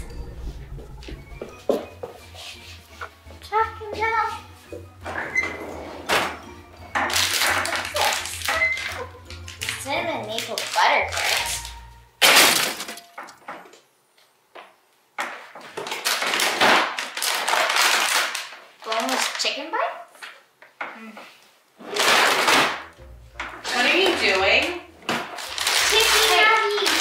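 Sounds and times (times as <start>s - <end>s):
plastic bags crinkling: 7.0s - 13.2s, 15.7s - 19.6s, 23.6s - 27.0s.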